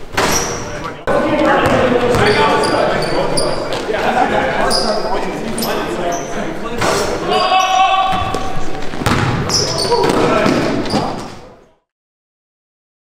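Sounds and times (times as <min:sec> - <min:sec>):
players' voices: 0:00.2 - 0:11.9
basketball bouncing on gym floor: 0:01.6 - 0:02.7, 0:08.1 - 0:11.4.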